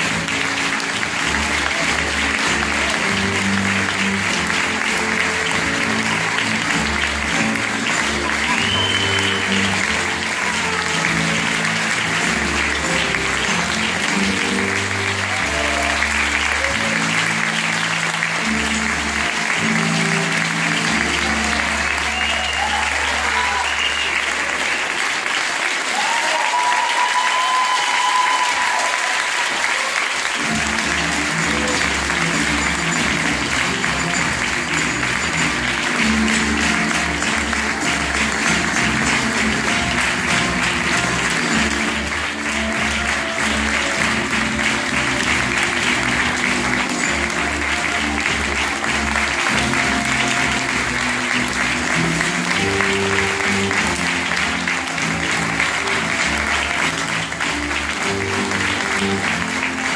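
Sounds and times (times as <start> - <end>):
music playing: 0.0 - 26.2, 27.4 - 59.9
audience applauding: 0.0 - 59.9.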